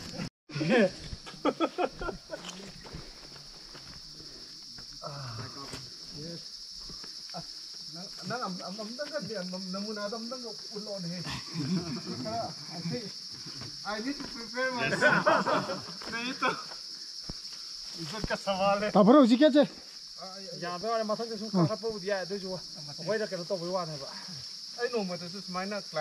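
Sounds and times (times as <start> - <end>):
insects droning: 0.0 - 26.0
people talking: 0.5 - 2.8, 13.8 - 16.7.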